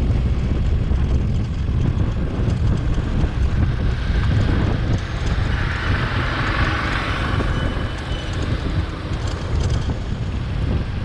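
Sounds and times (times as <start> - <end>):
motorbike engine and tyres: 0.0 - 11.0
wind rumble on microphone: 0.0 - 11.0.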